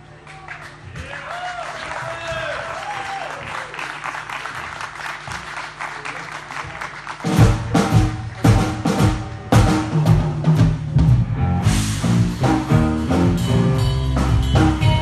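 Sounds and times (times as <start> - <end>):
audience applause and cheers: 0.0 - 9.5
blues band playing: 7.3 - 15.0
loud drum and bass hits: 7.3 - 15.0
held low bass note: 11.0 - 15.0.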